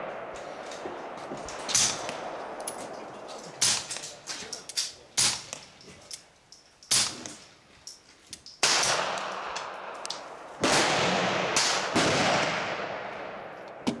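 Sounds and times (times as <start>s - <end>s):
suppressed pistol shots with echo: 0.0s - 5.7s, 6.9s - 7.4s, 8.6s - 13.8s
sharp cracks: 0.0s - 6.2s, 8.3s - 14.0s.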